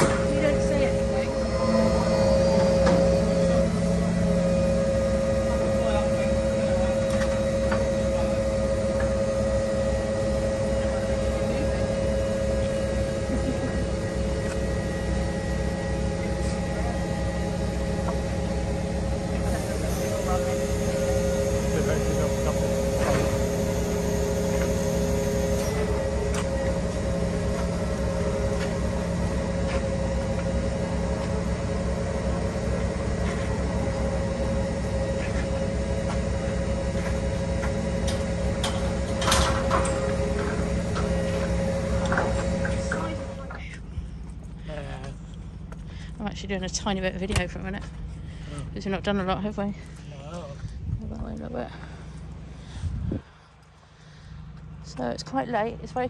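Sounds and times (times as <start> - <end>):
faint high whine: 0.0 - 43.6
crane diesel engine droning: 0.0 - 56.0.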